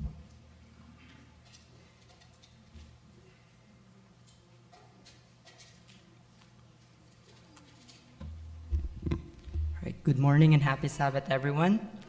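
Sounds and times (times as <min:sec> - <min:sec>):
microphone handling knock: 0:08.2 - 0:10.0.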